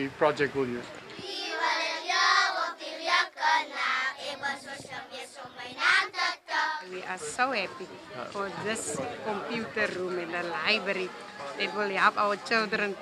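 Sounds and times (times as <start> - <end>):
children singing together: 1.2 - 6.9.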